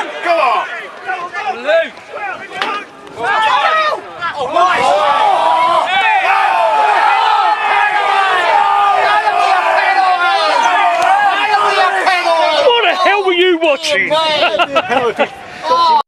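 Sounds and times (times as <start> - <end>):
crowd shouting: 0.0 - 16.0.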